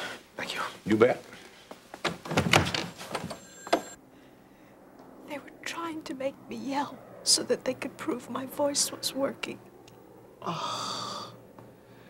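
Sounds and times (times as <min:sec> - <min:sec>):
wooden door opening and shutting: 0:02.0 - 0:03.9.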